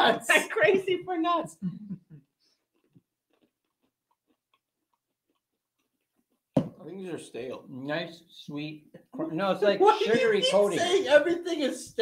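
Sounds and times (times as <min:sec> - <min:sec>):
people chewing crunchy almonds: 0:02.2 - 0:06.6.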